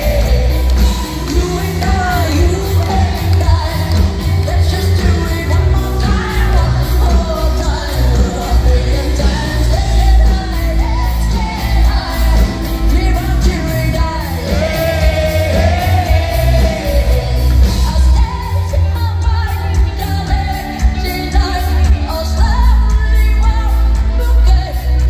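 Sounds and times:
drums: 0:00.0 - 0:25.0
female lead vocal: 0:00.0 - 0:25.0
pop-rock band playing live: 0:00.0 - 0:25.0.

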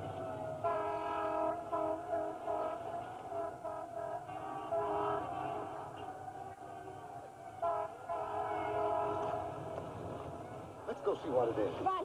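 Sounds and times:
long horn blast chord: 0:00.0 - 0:09.8.

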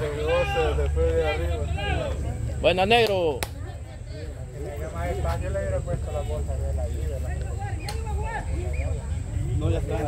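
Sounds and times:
men talking and calling out: 0:00.0 - 0:10.0.

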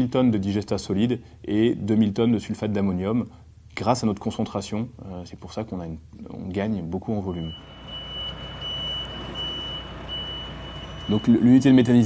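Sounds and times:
truck reversing alarm beeping: 0:07.3 - 0:12.0
truck engine rumbling: 0:07.6 - 0:11.6.

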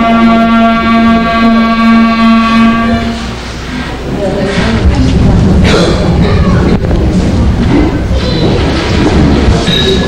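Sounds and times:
clarinet trio chord: 0:00.0 - 0:03.3.

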